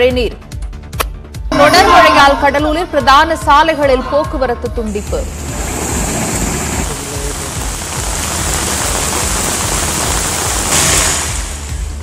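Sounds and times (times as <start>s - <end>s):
background music with low beat: 0.0s - 5.3s, 7.6s - 12.0s
heavy rain and floodwater rushing: 5.3s - 12.0s.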